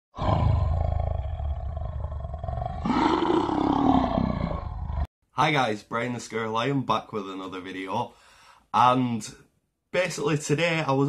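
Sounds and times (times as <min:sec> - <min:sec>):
lion roaring: 0:00.2 - 0:05.1.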